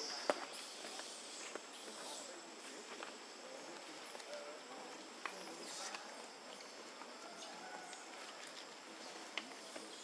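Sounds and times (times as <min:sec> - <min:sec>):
faint high hiss: 0:00.0 - 0:10.0.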